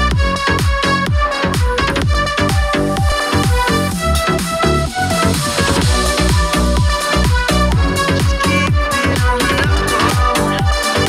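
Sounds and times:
falling-pitch bass kicks: 0.0s - 10.7s
electronic dance music from speaker: 0.0s - 11.0s.

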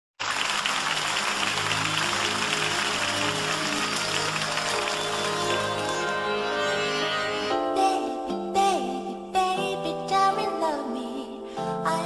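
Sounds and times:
audience applauding: 0.2s - 6.3s.

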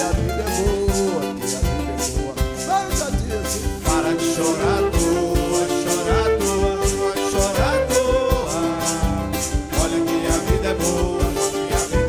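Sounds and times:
samba band playing: 0.0s - 12.0s
woman singing: 3.9s - 12.0s.

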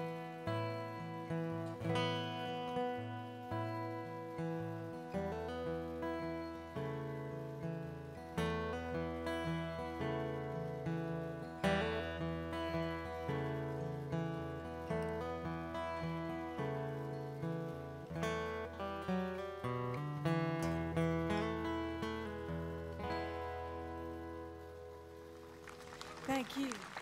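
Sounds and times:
acoustic guitar playing: 0.0s - 26.8s.

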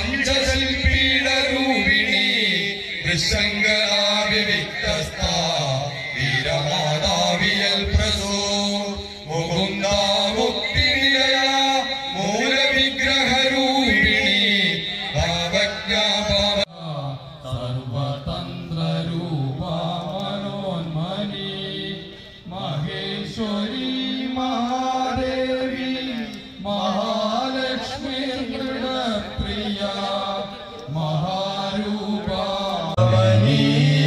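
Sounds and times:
man chanting a devotional song: 0.0s - 34.0s.

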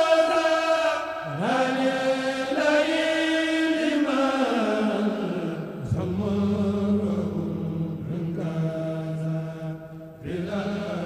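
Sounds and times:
men chanting through microphones: 0.0s - 11.0s.

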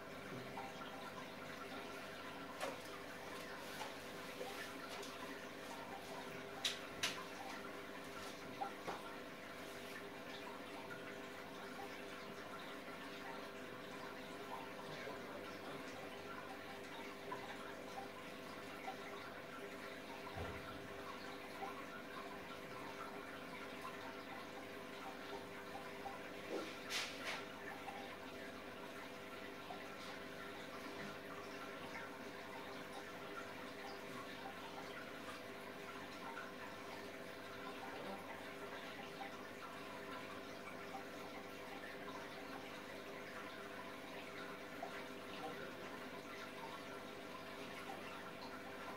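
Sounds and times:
faint steady hum: 0.0s - 48.9s
water trickling and dripping: 0.0s - 48.9s.

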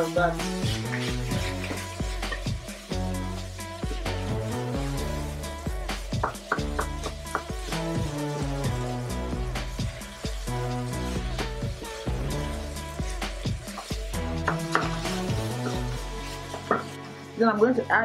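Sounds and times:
wooden spoon stirring frying meat: 0.0s - 17.4s
meat frying in a pan: 0.0s - 17.5s
background music with bass: 0.0s - 18.0s.

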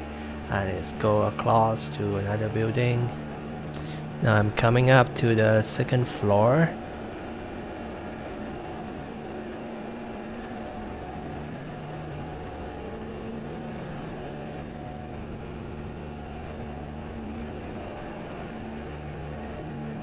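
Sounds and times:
industrial machinery hum: 0.0s - 20.0s
low steady tones: 0.0s - 20.0s.

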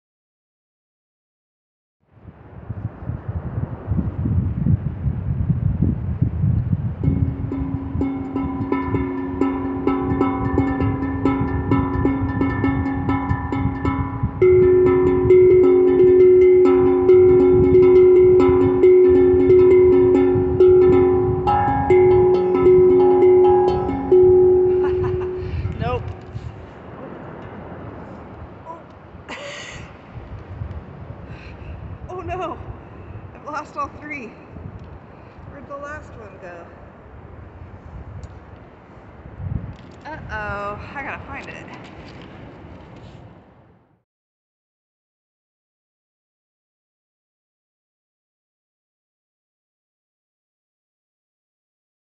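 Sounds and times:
wind buffeting microphone: 2.1s - 43.9s
steel tongue drum notes: 7.0s - 26.6s.

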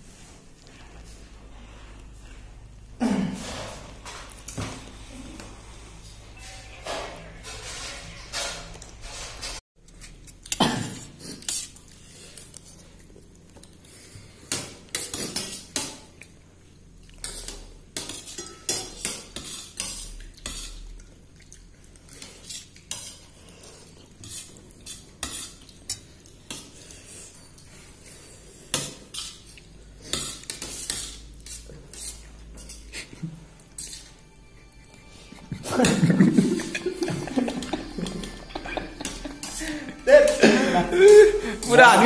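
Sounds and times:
metal spoon scraping a plate: 6.5s - 9.6s, 22.1s - 40.5s
utensil scraping a steel plate: 6.9s - 9.6s, 33.7s - 34.2s.

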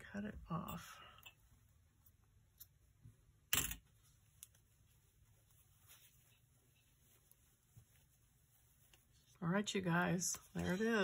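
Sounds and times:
ribbon rustling: 1.4s - 11.0s.

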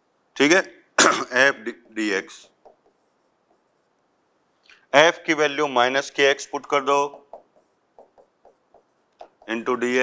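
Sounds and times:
marker pen writing on a board: 1.7s - 4.0s, 7.0s - 9.8s.

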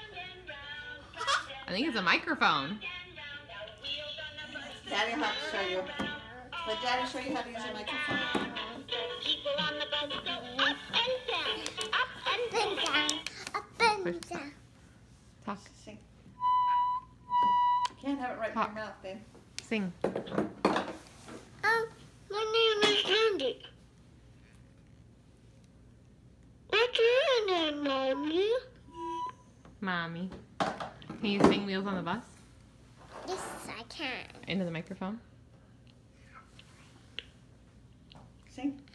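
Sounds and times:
toy microphone high tones: 27.8s - 29.5s.

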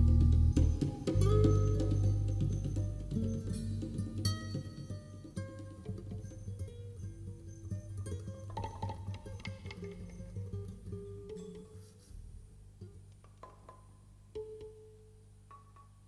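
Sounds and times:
ringing plucked and struck notes: 0.0s - 11.8s.

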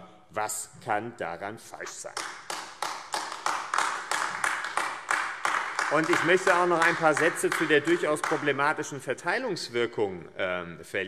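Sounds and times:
sharp hand clapping: 2.0s - 8.6s.

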